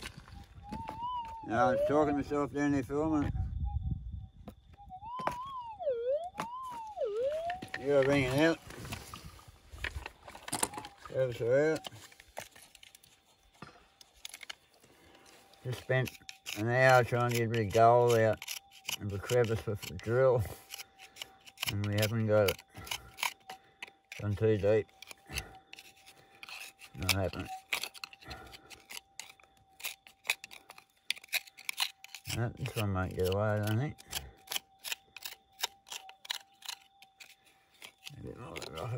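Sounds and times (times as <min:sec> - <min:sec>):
metal detector tone: 0:00.0 - 0:08.6, 0:10.3 - 0:12.1, 0:15.4 - 0:20.7, 0:21.6 - 0:23.5, 0:26.8 - 0:30.0
metal pick scraping rock: 0:09.8 - 0:38.9.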